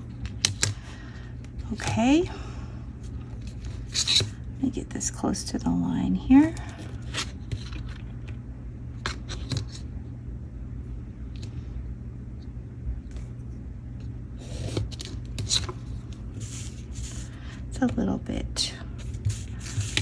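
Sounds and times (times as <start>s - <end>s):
paper handling: 6.6s - 8.4s, 14.5s - 18.0s, 19.0s - 20.0s.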